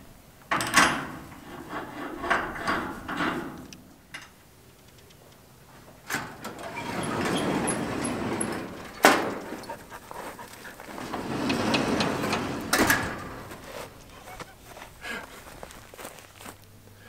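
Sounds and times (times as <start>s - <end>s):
steel barn door rumbling: 0.5s - 3.8s, 5.9s - 15.2s.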